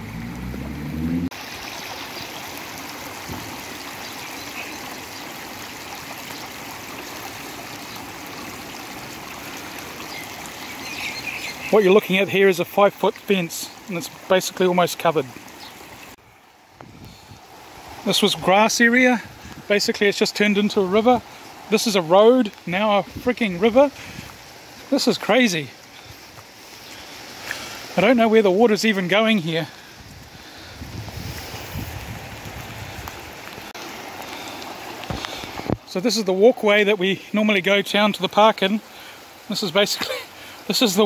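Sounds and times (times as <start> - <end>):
floodwater rushing: 0.0 - 41.0
heavy rain: 0.0 - 41.0
wind on microphone: 16.7 - 18.0, 30.0 - 33.3.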